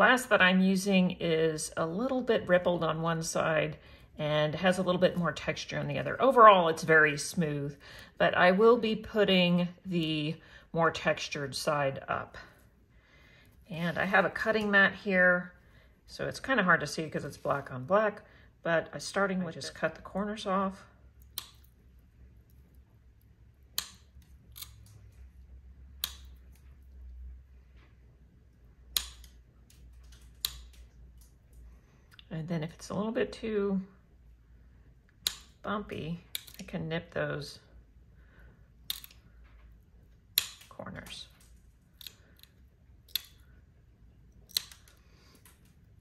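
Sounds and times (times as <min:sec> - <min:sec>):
glass nippers snapping glass: 0:40.4 - 0:40.7, 0:42.0 - 0:43.4, 0:44.5 - 0:45.0.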